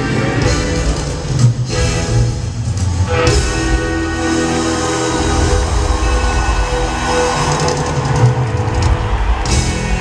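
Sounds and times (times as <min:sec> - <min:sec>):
live band music through speakers: 0:00.0 - 0:10.0.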